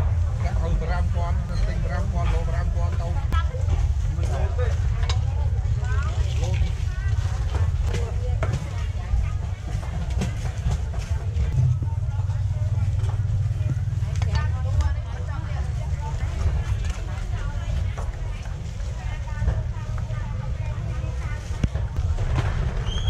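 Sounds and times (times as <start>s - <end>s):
distant voices talking: 0.0s - 23.0s
steady low rumble: 0.0s - 23.0s.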